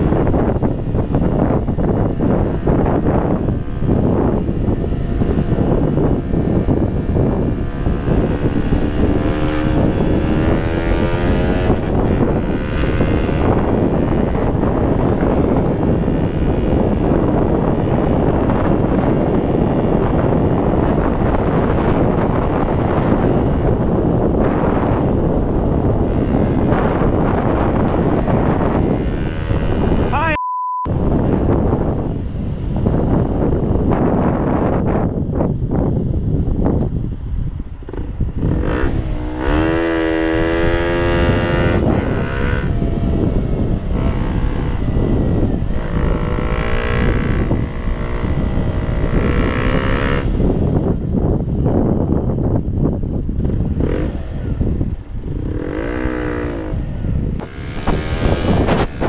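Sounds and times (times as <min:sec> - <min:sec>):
motorcycle engine: 0:00.0 - 0:59.0
wind rushing over microphone: 0:00.0 - 0:59.0.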